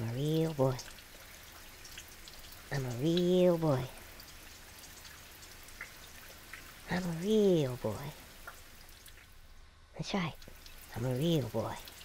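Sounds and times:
aquarium water bubbling: 0.0 - 12.0
light crackles: 0.0 - 12.0.

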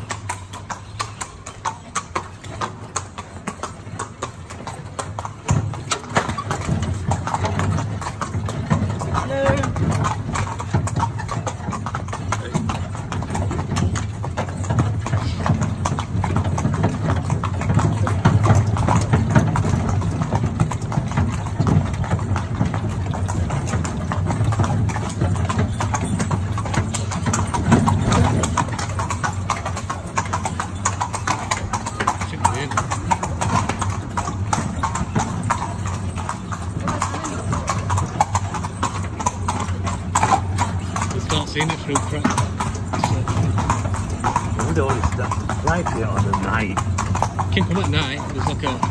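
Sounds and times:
horse hooves clip-clopping: 0.0 - 48.9
carriage rumble: 0.2 - 48.9.

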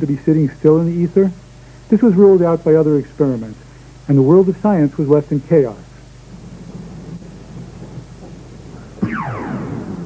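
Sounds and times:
low steady hum: 0.0 - 10.0
tape hiss: 0.0 - 10.0
downward sweeping synth effect: 9.0 - 10.0.

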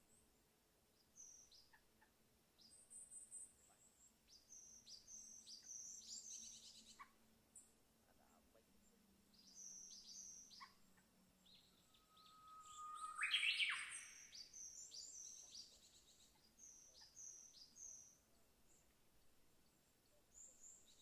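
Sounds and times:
birds whistling: 12.0 - 15.4
upward sweeping bird call: 12.2 - 14.2.

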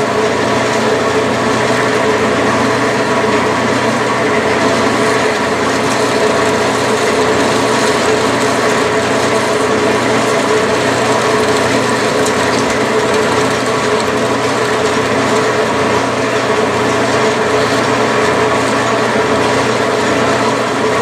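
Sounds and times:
metal lathe humming and whining: 0.0 - 21.0.

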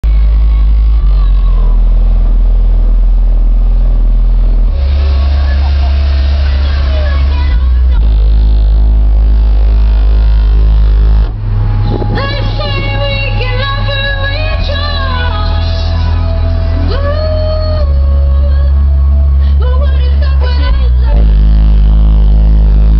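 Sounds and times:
loud sustained bass notes: 0.0 - 22.9.

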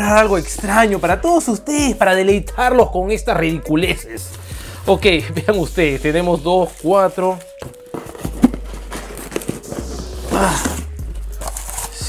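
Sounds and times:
bubble wrap crinkling: 5.8 - 12.0
cardboard rustling and knocking: 6.7 - 12.0.

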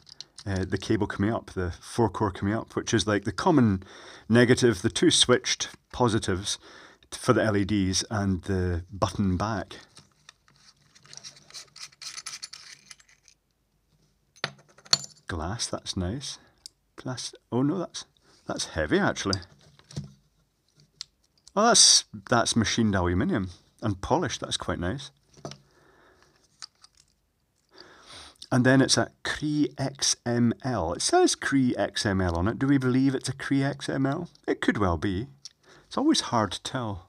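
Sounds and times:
handling small metal parts: 0.0 - 0.6, 9.9 - 13.5, 14.3 - 15.3, 26.4 - 27.7
metal threads scratching: 10.1 - 13.4.

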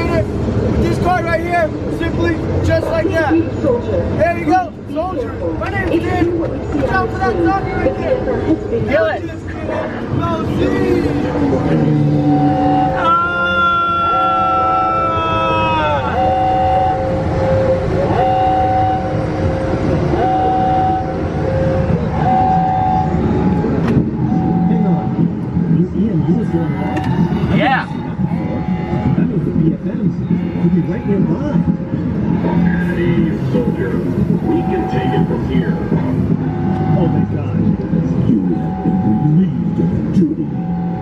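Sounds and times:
indistinct voices: 0.0 - 41.0
low rumble: 0.0 - 41.0.

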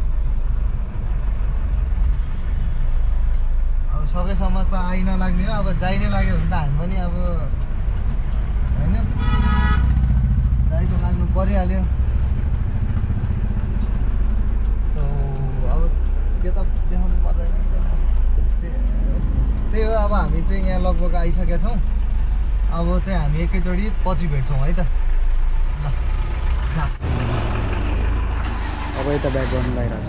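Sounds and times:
vehicle road and engine rumble: 0.0 - 30.0
vehicle horn honking: 9.2 - 10.0.

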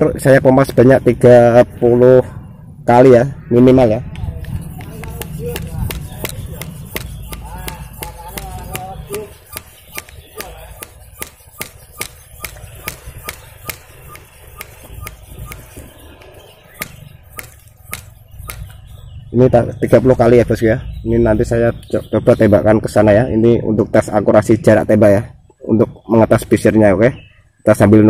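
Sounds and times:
hand pump clicking: 4.5 - 18.8.

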